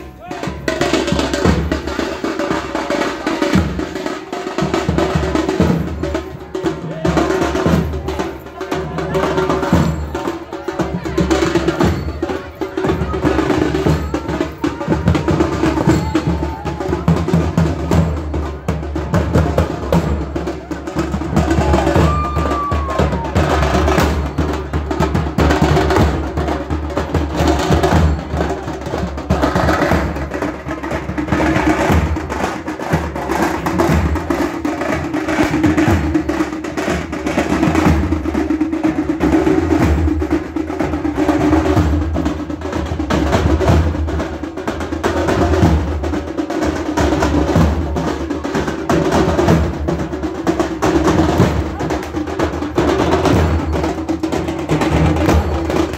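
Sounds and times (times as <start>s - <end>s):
fast drumming: 0.0s - 55.9s.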